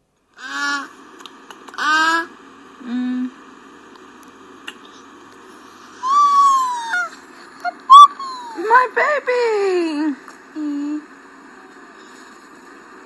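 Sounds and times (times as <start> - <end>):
child squealing: 6.0 - 8.6.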